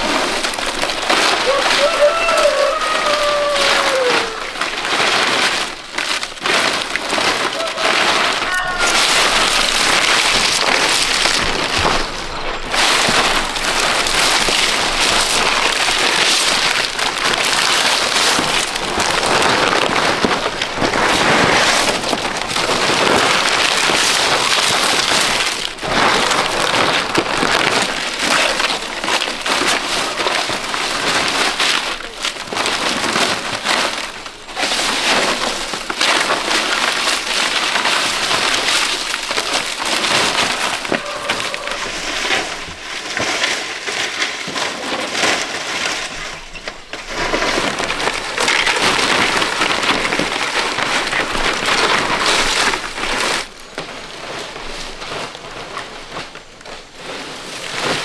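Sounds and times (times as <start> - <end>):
palm fronds rustling and crackling: 0.0 - 58.0.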